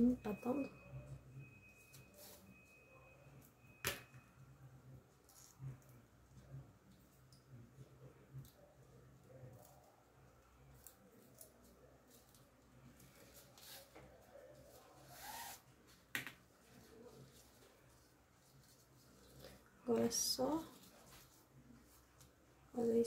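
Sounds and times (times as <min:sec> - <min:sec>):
ribbon and thread rustling: 0:10.7 - 0:23.0.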